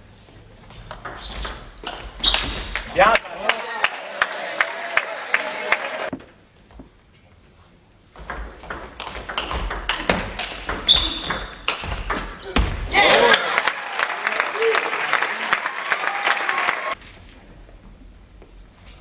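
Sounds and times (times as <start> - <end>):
spectators' voices: 3.0 - 6.1
table tennis ball clicking: 8.2 - 12.3.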